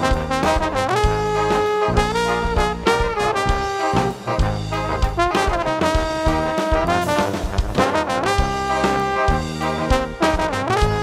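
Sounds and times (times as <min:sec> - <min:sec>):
brass band playing: 0:00.0 - 0:11.0.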